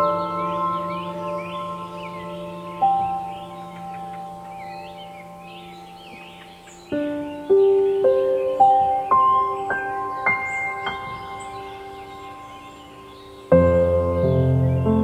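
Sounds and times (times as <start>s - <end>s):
birds chirping and singing: 0.0s - 15.0s
soft slow piano music: 0.0s - 15.0s.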